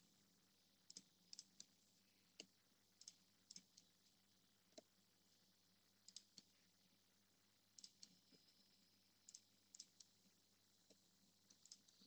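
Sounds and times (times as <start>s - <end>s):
computer mouse clicks: 0.9s - 1.8s, 2.4s - 3.9s, 6.0s - 6.6s, 7.8s - 10.2s, 10.8s - 12.0s.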